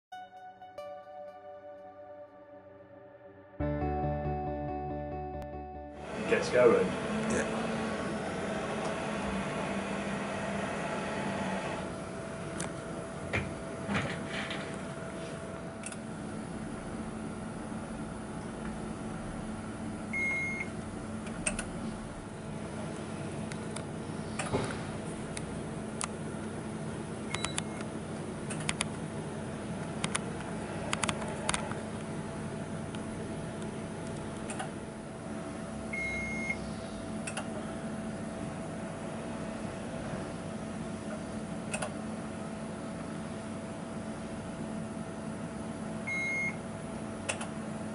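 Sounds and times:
steady machine hum: 0.8 - 47.9
measuring machine humming: 6.0 - 13.9.

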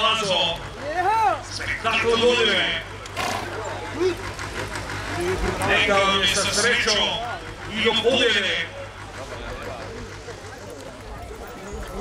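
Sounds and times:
other voices: 0.0 - 12.0.

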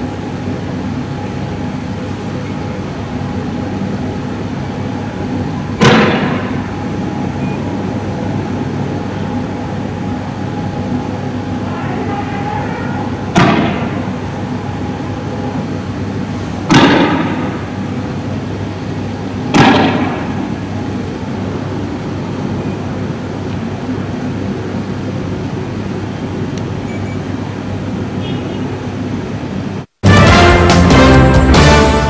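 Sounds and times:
steady background noise: 0.0 - 32.0
loud echoing bangs: 5.8 - 7.0, 13.3 - 14.2, 16.6 - 18.1, 19.5 - 20.7.

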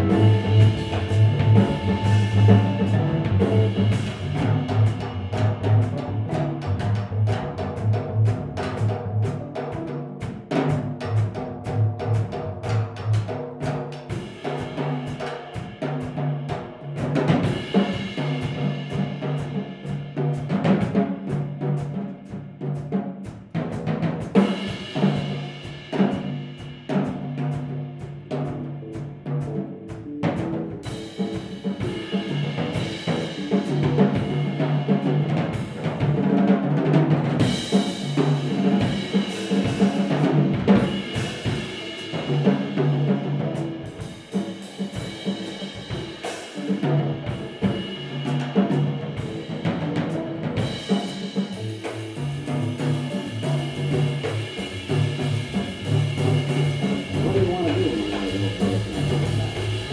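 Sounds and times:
repeating bass line: 0.0 - 4.6, 57.0 - 59.9
busy drum kit: 0.0 - 59.9
jazz combo playing: 0.0 - 59.9.

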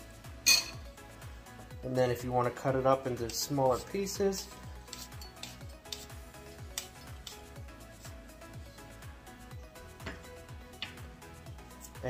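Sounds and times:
background music with low beat: 0.0 - 12.0
knife cutting on wooden board: 4.9 - 7.5.

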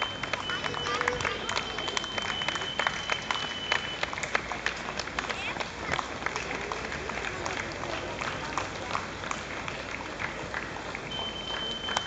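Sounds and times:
outdoor street hum: 0.0 - 12.0
scattered clapping: 0.0 - 12.0.

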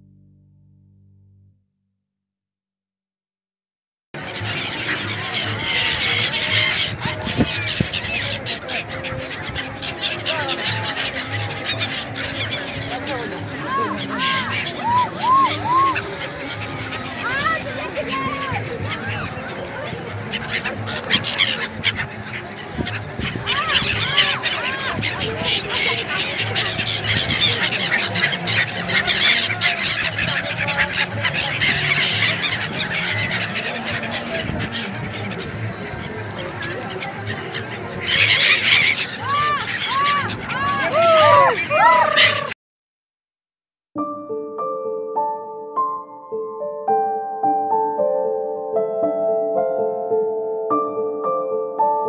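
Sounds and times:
gulls calling: 4.2 - 42.6.

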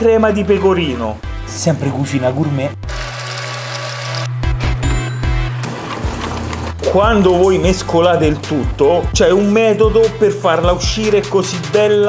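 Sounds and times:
background music with low bass: 0.0 - 12.0.

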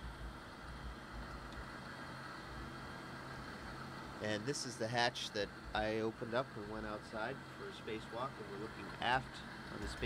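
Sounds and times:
ventilation fans humming: 0.0 - 10.0.

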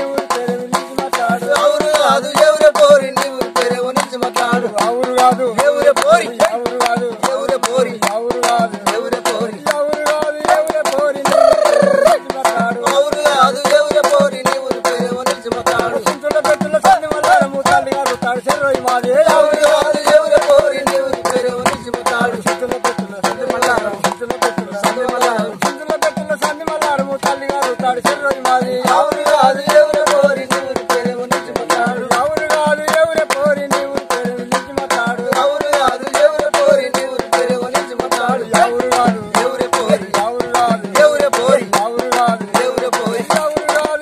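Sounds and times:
men singing folk song: 0.0 - 44.0
sharp hand claps: 0.2 - 40.2, 41.2 - 44.0.

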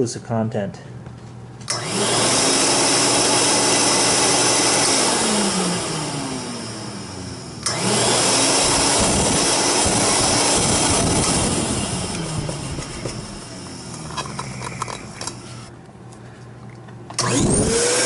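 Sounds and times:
vacuum motor whine: 1.7 - 15.7, 17.1 - 18.0.

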